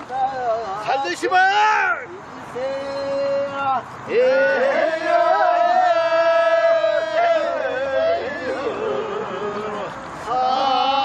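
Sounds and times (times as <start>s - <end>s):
men singing folk work song: 2.7s - 11.0s.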